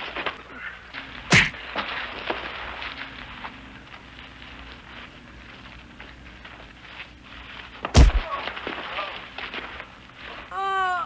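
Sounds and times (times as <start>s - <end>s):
soundtrack hiss: 0.0s - 11.0s
scuffling footsteps: 0.9s - 9.8s
light knocks of fighting: 1.3s - 1.6s, 7.8s - 8.5s
loud thud of body falling: 7.9s - 8.4s.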